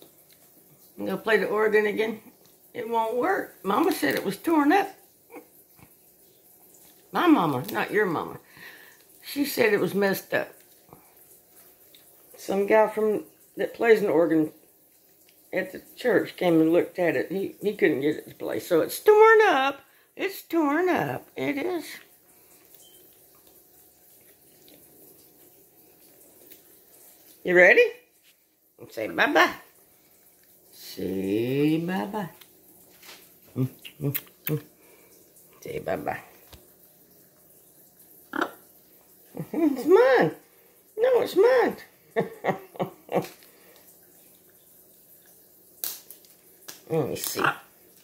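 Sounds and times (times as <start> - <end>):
faint steady hum: 0.0 - 48.0
nut shell cracking: 45.8 - 46.8.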